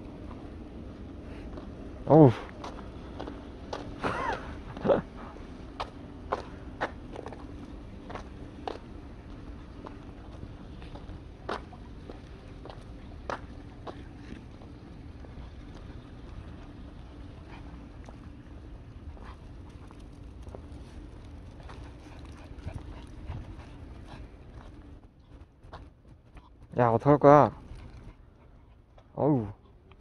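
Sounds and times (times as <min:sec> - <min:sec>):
steady low rumble: 0:00.0 - 0:30.0
footsteps on pavement: 0:00.2 - 0:26.8.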